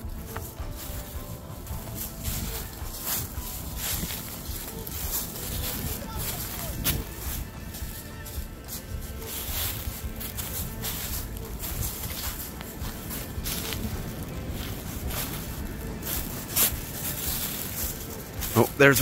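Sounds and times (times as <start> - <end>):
footsteps crunching through dry leaves: 0.0 - 19.0.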